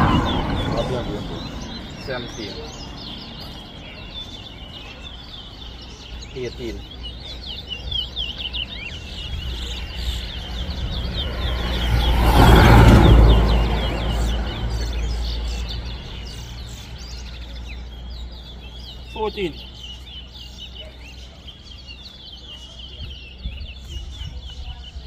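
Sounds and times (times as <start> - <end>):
loud rushing noise: 0.0 - 2.6, 10.2 - 16.1
finches chirping: 0.0 - 25.0.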